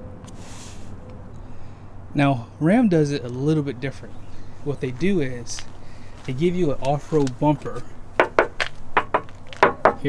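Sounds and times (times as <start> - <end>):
hand knocking on metal bumper: 8.2 - 10.0.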